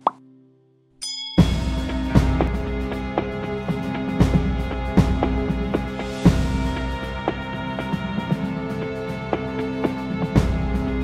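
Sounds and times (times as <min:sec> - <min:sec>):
high chime: 0:01.0 - 0:02.1.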